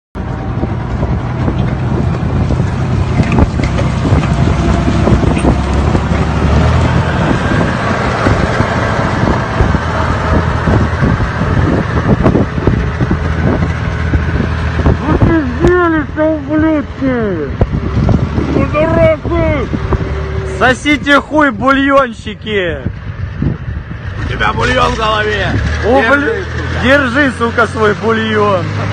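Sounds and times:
tank engine drone: 0.2s - 28.9s.

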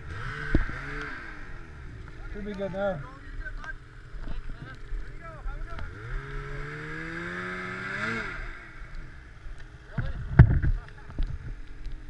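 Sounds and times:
snowmobile engine revving: 0.0s - 11.5s.

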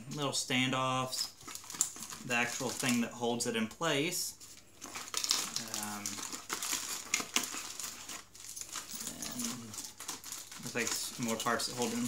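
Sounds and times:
plastic packaging crinkling: 0.1s - 12.0s
small metal parts clicking and rattling: 4.9s - 12.0s.

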